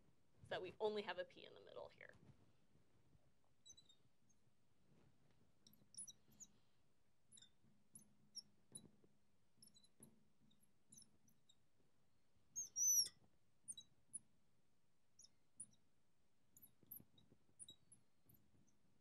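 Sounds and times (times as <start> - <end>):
marker squeaking on glass: 3.6 - 4.4, 5.6 - 6.6, 7.3 - 7.6, 12.6 - 14.0.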